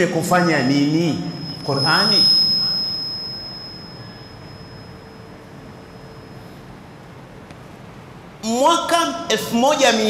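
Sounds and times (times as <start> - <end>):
high-pitched electronic tone: 0.0 - 6.9
low hum: 0.0 - 8.4
background hiss: 0.0 - 10.0.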